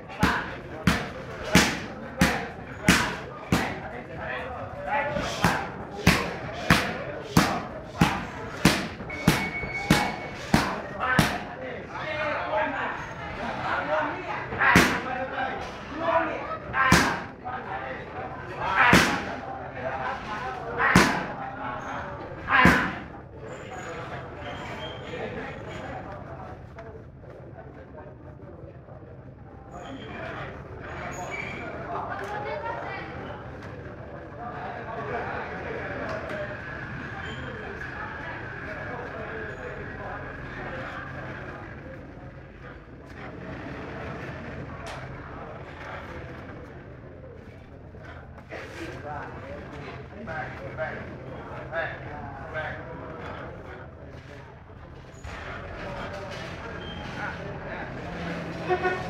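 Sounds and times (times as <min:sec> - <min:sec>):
voices murmuring: 0:00.0 - 0:59.0
sharp slaps of strikes landing: 0:00.2 - 0:03.8, 0:05.2 - 0:11.5, 0:14.7 - 0:15.1, 0:16.9 - 0:17.3, 0:18.9 - 0:19.3, 0:20.9 - 0:21.4.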